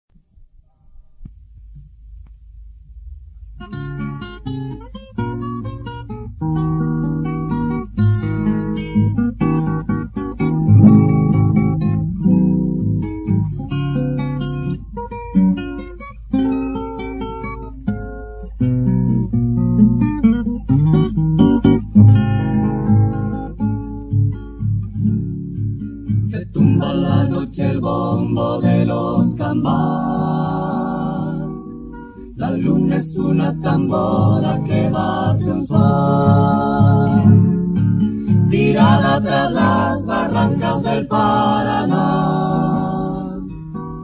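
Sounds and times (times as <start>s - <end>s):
steady low hum: 0.1s - 9.3s, 24.8s - 44.0s
acoustic guitar picking and strumming: 1.6s - 44.0s.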